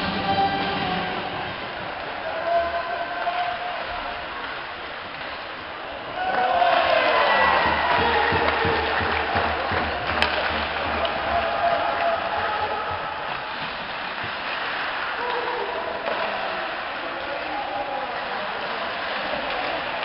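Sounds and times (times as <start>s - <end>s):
crowd noise and voices: 0.0s - 20.0s.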